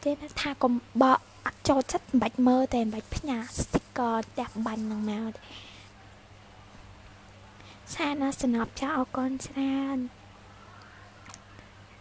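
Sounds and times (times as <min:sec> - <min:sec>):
woman's voice in pitched syllables: 0:00.0 - 0:06.0, 0:07.8 - 0:10.2.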